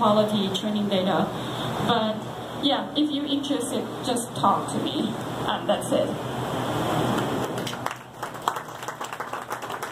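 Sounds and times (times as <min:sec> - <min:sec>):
audience applauding: 0:07.4 - 0:09.9
individual hand claps: 0:07.5 - 0:09.9.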